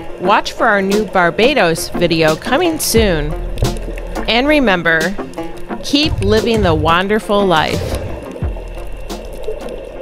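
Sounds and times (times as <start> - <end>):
clicking and crackling: 2.2 - 4.4, 5.0 - 6.3
low rumble: 6.0 - 9.1.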